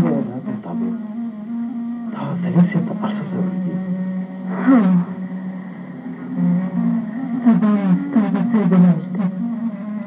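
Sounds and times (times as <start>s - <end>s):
person speaking: 0.0s - 1.0s, 2.1s - 3.9s
steady low hum: 0.0s - 10.0s.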